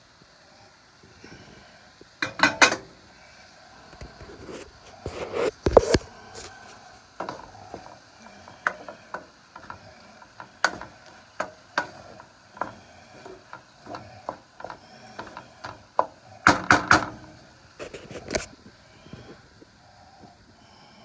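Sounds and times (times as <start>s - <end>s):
clattering in pan: 2.2s - 3.0s, 5.5s - 18.0s
wooden spoon scraping frying pan: 4.0s - 18.6s.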